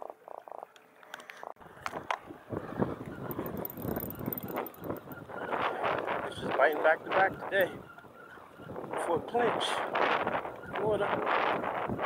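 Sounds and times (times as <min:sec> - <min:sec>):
wind: 0:00.0 - 0:12.0
handling rustling and knocks: 0:03.3 - 0:05.0.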